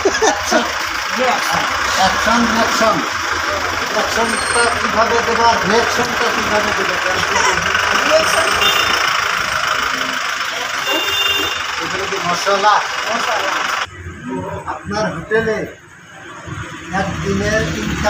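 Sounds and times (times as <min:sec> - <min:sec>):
people talking: 0:00.0 - 0:08.9, 0:09.5 - 0:18.0.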